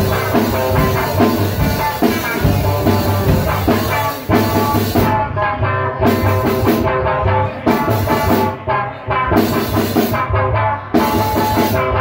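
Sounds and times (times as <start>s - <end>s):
drum kit beat: 0.0s - 12.0s.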